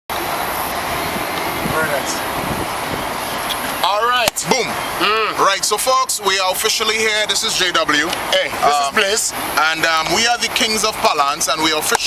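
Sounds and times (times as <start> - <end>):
man talking: 1.6 - 2.3, 3.8 - 12.0.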